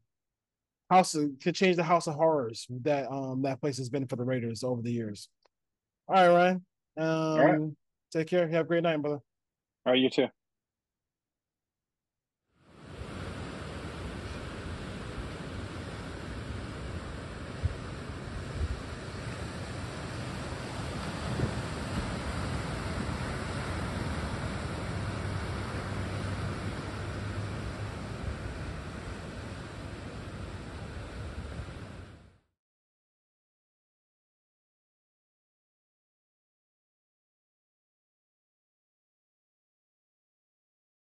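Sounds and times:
ocean surf breaking: 0:12.6 - 0:32.3.

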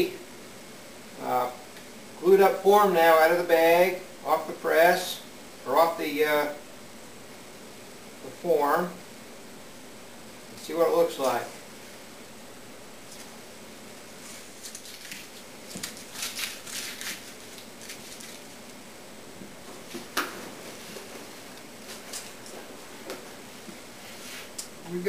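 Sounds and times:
plastic sheeting rustling and crinkling: 0:14.2 - 0:18.8.

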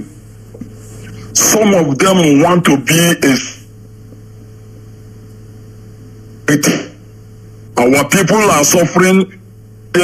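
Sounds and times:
phone line hum and hiss: 0:00.0 - 0:10.0.

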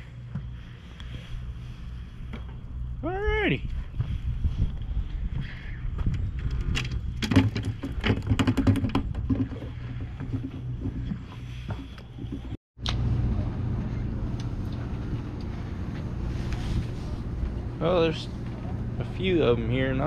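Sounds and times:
steady low rumble: 0:00.0 - 0:08.0, 0:09.0 - 0:20.0.

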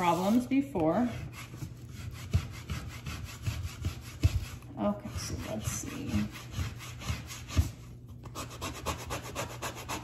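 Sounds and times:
plastic scraper rasping on paper: 0:00.0 - 0:10.0.

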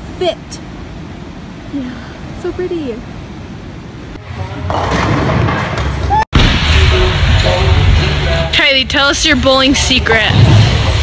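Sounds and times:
bowling alley noise: 0:04.1 - 0:11.0
bowling balls rolling down lanes: 0:04.2 - 0:06.2.

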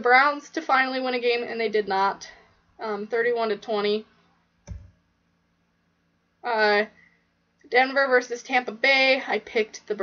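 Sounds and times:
computer mouse click: 0:04.6 - 0:05.0.

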